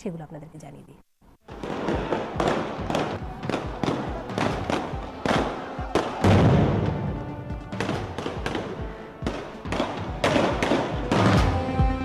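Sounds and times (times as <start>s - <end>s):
background music: 1.4s - 12.0s
sharp explosive bangs: 1.5s - 11.7s
deep blast: 6.1s - 8.4s.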